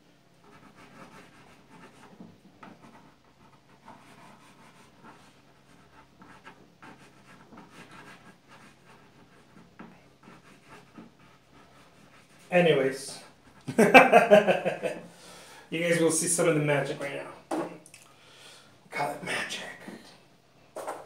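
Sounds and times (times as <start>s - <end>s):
drawing stick scratching canvas: 0.4s - 13.7s.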